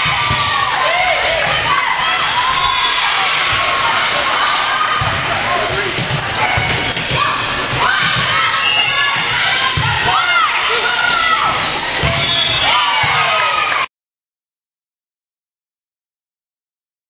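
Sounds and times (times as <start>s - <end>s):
people shouting and calling out: 0.0s - 13.9s.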